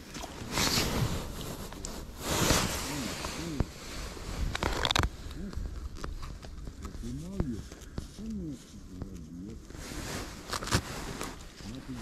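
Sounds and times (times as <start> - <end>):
hands handling fish: 0.0 - 12.0.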